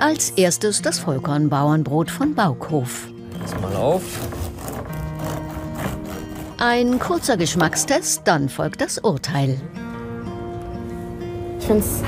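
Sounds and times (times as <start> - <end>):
background music with held notes: 0.0 - 12.0
bread knife sawing crust: 3.7 - 8.2.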